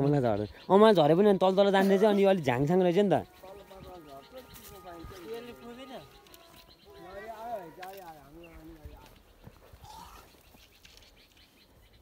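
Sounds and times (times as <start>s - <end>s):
drawn-out wavering call: 3.1s - 8.6s.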